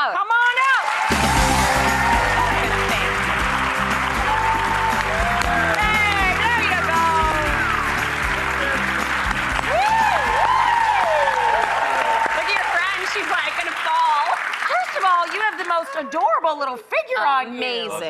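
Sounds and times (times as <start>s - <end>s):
audience applauding and cheering: 0.2s - 16.4s
shouted whoops: 1.0s - 3.2s, 4.1s - 8.2s, 9.6s - 12.7s
upbeat music: 1.0s - 14.0s.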